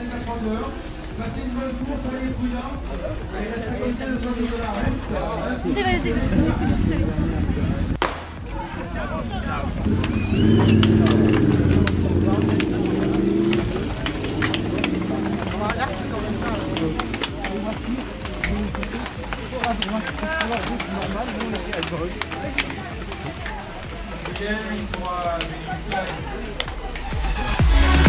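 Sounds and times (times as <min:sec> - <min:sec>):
cleats clicking into pedals: 0:00.0 - 0:28.0
voices chattering: 0:00.0 - 0:28.0.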